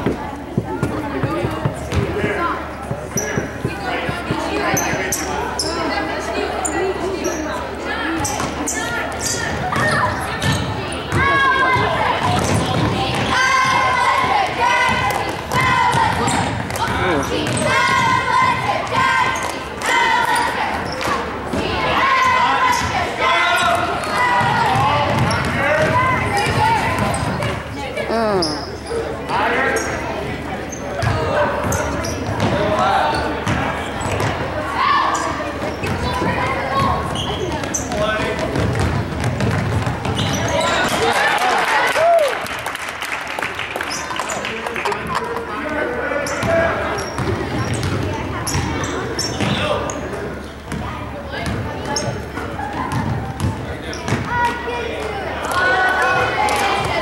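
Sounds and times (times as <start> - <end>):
spectators' voices: 0.0 - 57.0
shoe squeaks: 3.1 - 3.5, 4.6 - 6.0, 6.6 - 7.6, 8.2 - 11.1, 28.2 - 29.1, 30.6 - 31.0, 31.6 - 32.3, 37.0 - 38.0, 40.1 - 40.9, 46.2 - 50.7.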